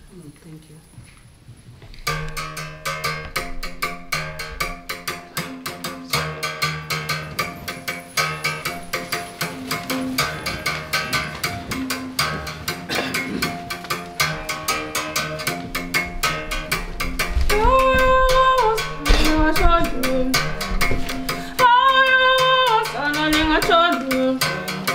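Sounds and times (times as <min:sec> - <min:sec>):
musical bow struck with a stick: 0:02.1 - 0:24.9.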